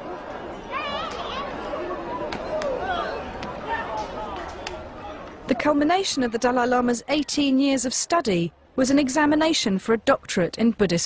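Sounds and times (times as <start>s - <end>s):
crowd chatter: 0.0s - 9.4s.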